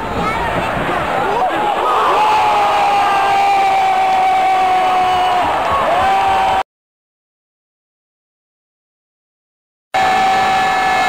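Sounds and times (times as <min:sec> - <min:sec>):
crowd noise: 0:00.0 - 0:06.6, 0:10.0 - 0:11.0.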